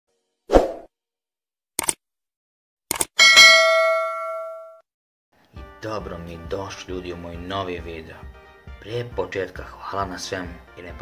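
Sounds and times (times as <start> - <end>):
bright bell ding: 3.2 - 4.8.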